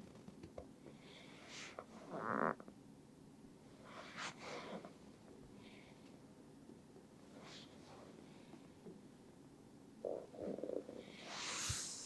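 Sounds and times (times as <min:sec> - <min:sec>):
soft hiss: 0:00.0 - 0:12.0
stomach gurgling: 0:10.0 - 0:11.1.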